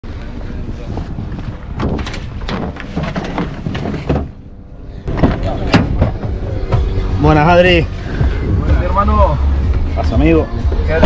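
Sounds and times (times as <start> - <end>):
wind buffeting microphone: 0.3 - 2.8
men talking indistinctly: 5.2 - 11.0.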